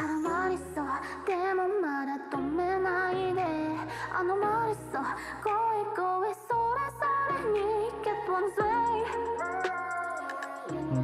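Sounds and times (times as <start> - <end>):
sustained synth bass: 10.7 - 11.0.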